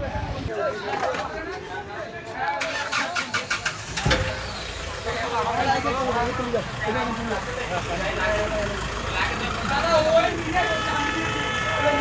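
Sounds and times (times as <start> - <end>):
voices: 0.0 - 12.0
car engine starting and running: 2.5 - 10.5.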